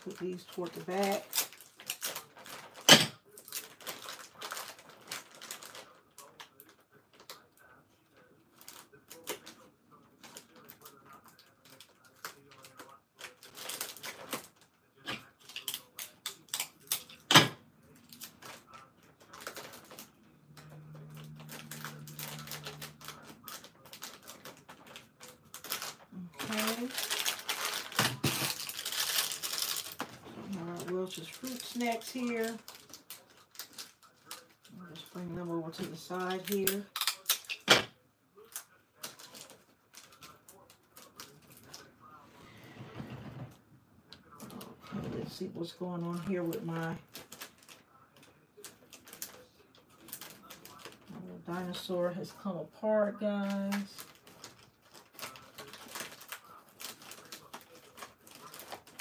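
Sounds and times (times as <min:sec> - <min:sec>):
plastic wrappers crinkling: 0:00.0 - 0:37.7, 0:38.4 - 0:42.2, 0:44.2 - 0:59.0.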